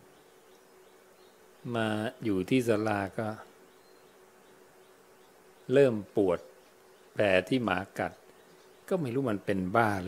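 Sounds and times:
faint steady hum: 0.0 - 10.0
man speaking: 1.6 - 3.5, 5.7 - 6.5, 7.2 - 8.2, 8.9 - 10.0.

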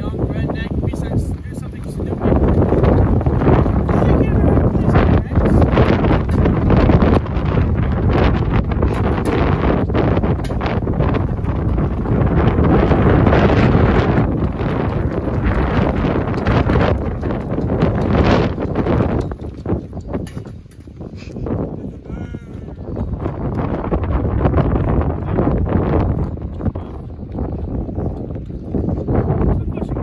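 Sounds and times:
strong wind gusting on microphone: 0.0 - 30.0.

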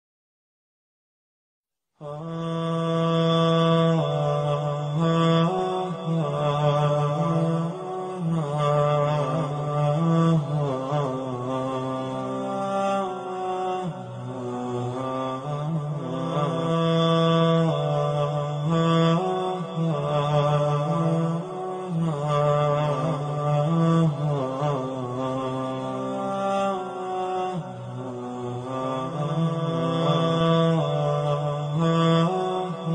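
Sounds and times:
person chanting: 2.0 - 32.9.

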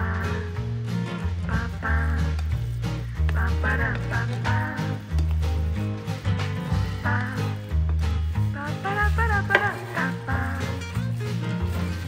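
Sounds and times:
upbeat swing music: 0.0 - 12.0.

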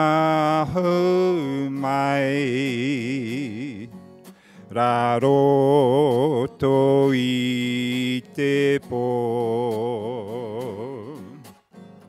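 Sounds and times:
elderly man singing with vibrato: 0.0 - 4.0, 4.6 - 11.5
guitar accompaniment: 0.0 - 12.0
singer breaths: 4.2 - 4.7.

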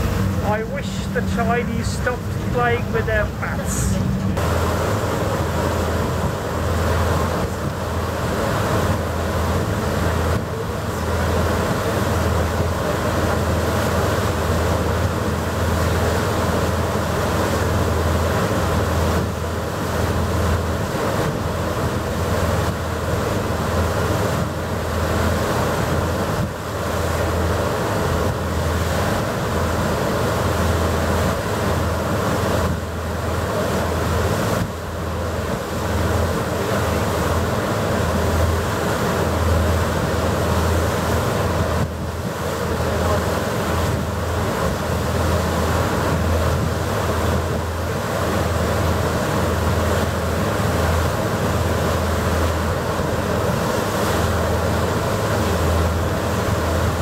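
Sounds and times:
ferry engines humming: 0.0 - 57.0
propeller wake rushing: 0.0 - 57.0.

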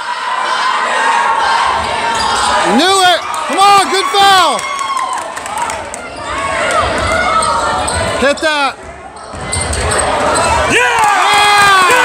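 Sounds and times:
crowd noise in a gymnasium: 0.0 - 12.0.

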